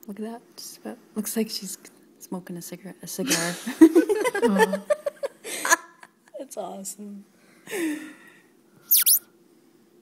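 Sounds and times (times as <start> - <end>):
loud high-pitched squeak: 8.9 - 9.2.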